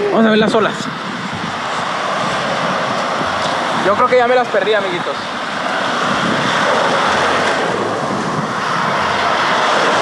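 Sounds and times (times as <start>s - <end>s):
waves washing on sandy shore: 0.0s - 10.0s.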